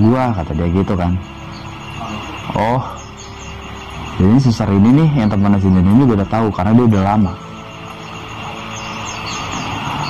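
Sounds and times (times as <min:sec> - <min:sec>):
ambient drone music: 0:00.0 - 0:10.0.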